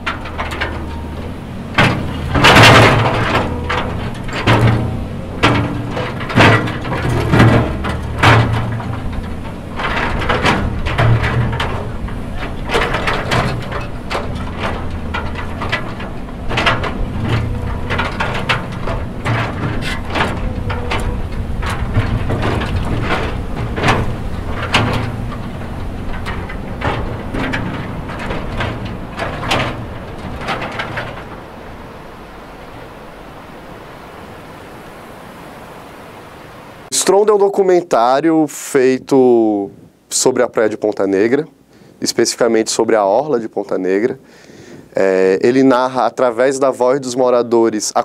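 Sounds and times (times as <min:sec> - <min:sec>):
rock and metal clattering: 0:00.0 - 0:34.3
excavator engine running: 0:00.0 - 0:36.9
steady rushing noise: 0:00.0 - 0:37.6.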